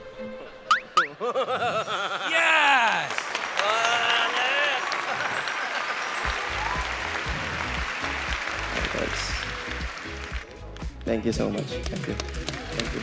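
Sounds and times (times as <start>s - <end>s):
audience applauding and cheering: 2.0s - 13.0s
excited shout: 2.1s - 5.6s, 6.3s - 7.0s.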